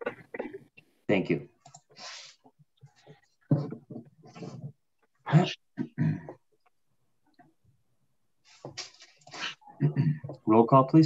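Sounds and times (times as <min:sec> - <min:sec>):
man clearing throat: 0:05.2 - 0:06.4, 0:09.8 - 0:10.4.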